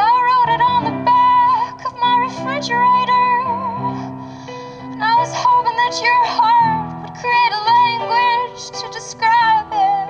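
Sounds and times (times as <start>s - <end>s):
woman singing into microphone: 0.0s - 4.1s, 5.0s - 10.0s.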